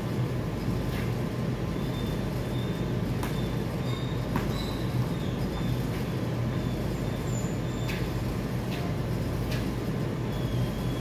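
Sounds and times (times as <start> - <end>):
low mechanical rumble: 0.0 - 11.0.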